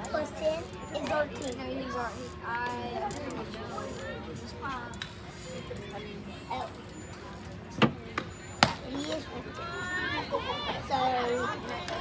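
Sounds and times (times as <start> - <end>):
bat striking ball: 8.6 - 8.8.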